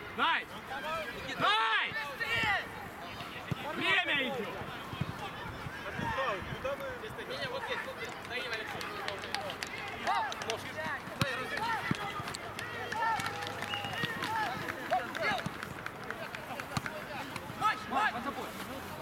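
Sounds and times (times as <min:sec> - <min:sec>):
footballers shouting: 0:00.0 - 0:19.0.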